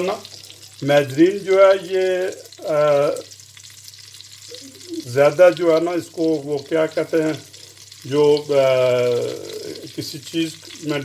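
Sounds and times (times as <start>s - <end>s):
man talking: 0.0s - 3.3s, 4.5s - 7.4s, 8.1s - 11.0s
fish sizzling in a pan: 0.0s - 11.0s.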